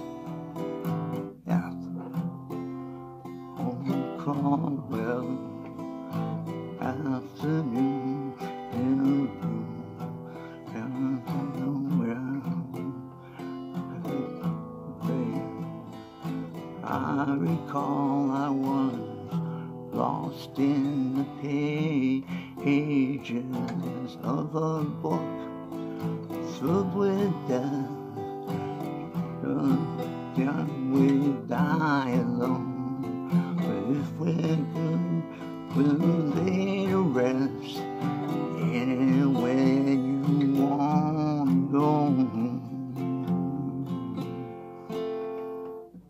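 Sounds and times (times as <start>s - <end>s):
man singing: 0.0s - 45.3s
acoustic guitar strumming: 0.0s - 46.0s.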